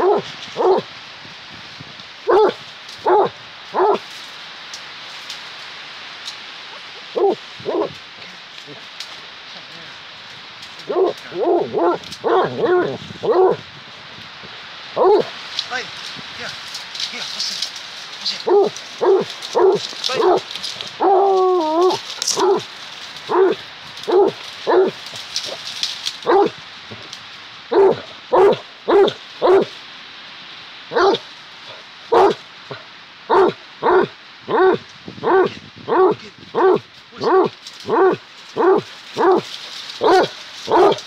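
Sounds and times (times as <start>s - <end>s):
dog barking: 0.0s - 0.9s, 2.3s - 4.0s, 7.1s - 7.9s, 10.9s - 13.6s, 15.0s - 15.3s, 18.4s - 21.2s, 22.3s - 22.7s, 23.3s - 25.0s, 26.2s - 26.6s, 27.7s - 29.7s, 30.9s - 41.0s
dog baying: 0.0s - 0.9s, 2.3s - 4.0s, 7.1s - 8.0s, 10.8s - 13.6s, 15.0s - 15.3s, 18.4s - 22.7s, 23.3s - 25.6s, 26.2s - 26.5s, 27.7s - 29.7s, 30.9s - 41.0s.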